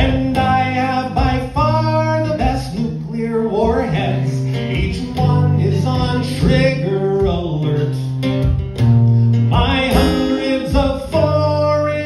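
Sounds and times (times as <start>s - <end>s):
man singing: 0.0s - 8.6s, 9.4s - 12.0s
acoustic guitar: 0.0s - 12.0s.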